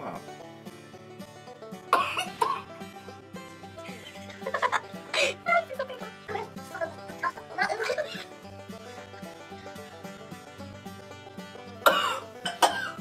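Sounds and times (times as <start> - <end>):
background music: 0.0 - 13.0
woman coughing: 1.9 - 2.7, 11.8 - 13.0.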